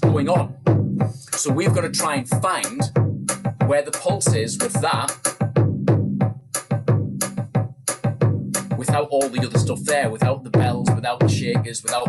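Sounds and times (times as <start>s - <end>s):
deep bass drum beat: 0.0s - 12.0s
sharp drum machine clicks: 0.0s - 12.0s.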